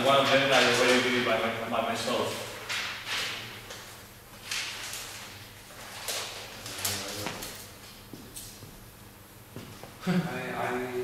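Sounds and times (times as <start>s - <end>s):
paper rustling: 0.0s - 1.4s, 2.2s - 7.8s.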